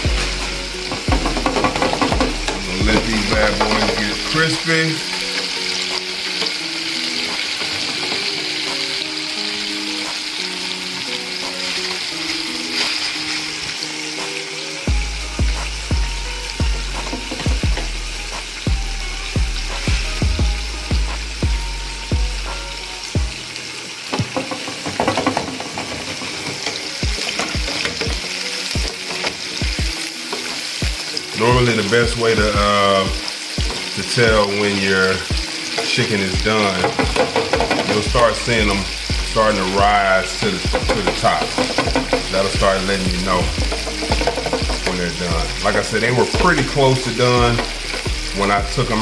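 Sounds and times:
background music with bass beat: 0:00.0 - 0:07.5, 0:14.2 - 0:23.6, 0:26.9 - 0:34.4, 0:36.4 - 0:49.0
chicken sizzling in deep fryer: 0:00.0 - 0:49.0.

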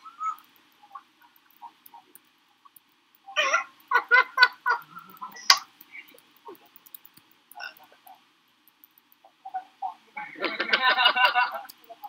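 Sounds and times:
man laughing: 0:10.4 - 0:11.7.

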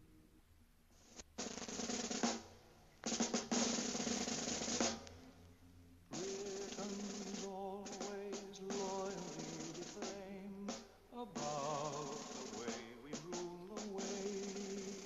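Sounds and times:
snare drum rolls: 0:01.0 - 0:05.3, 0:06.1 - 0:15.0.

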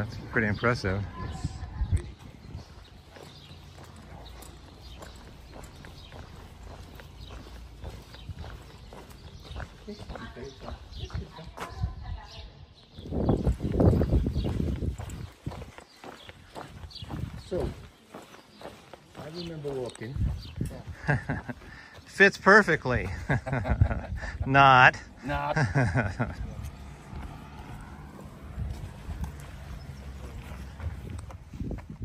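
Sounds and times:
footsteps on paved street: 0:00.0 - 0:32.0
low rumble: 0:25.6 - 0:32.0.

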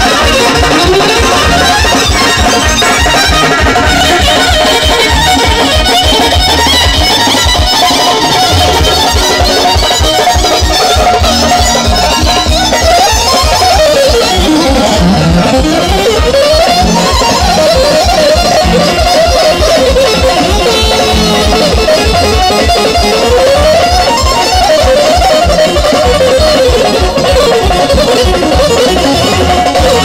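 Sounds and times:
keyboard lead melody with pitch bends: 0:00.0 - 0:30.0
live band music: 0:00.0 - 0:30.0
pulsing bass beat: 0:00.0 - 0:30.0.

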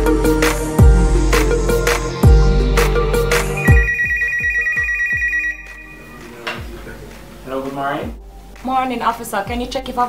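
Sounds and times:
hip-hop beat with bass: 0:00.0 - 0:07.3
two-tone telephone ringtone: 0:03.6 - 0:06.2.

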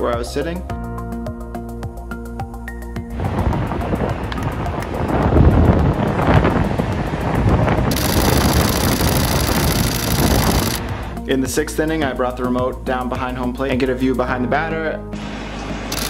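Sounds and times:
wind buffeting microphone: 0:03.1 - 0:11.2.

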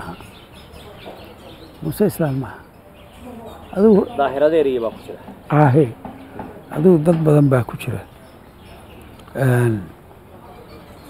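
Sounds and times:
faint outdoor background noise: 0:00.0 - 0:11.0
man speaking: 0:01.8 - 0:02.6, 0:03.7 - 0:06.0, 0:06.7 - 0:08.1, 0:09.3 - 0:10.0.

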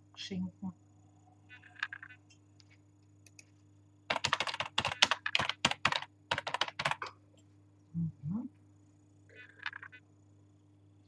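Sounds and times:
typing on computer keyboard: 0:04.1 - 0:07.1.

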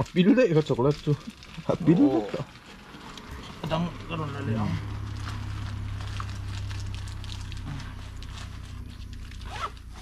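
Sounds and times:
backpack rustling and clicking: 0:08.2 - 0:10.0.

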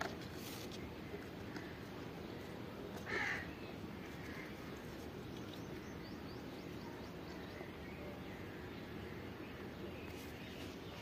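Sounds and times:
outdoor background noise: 0:00.0 - 0:11.0.

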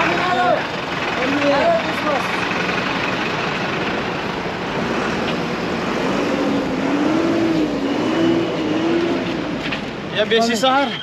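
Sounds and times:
diesel bus engines running: 0:00.0 - 0:11.0
traffic noise: 0:00.0 - 0:11.0.

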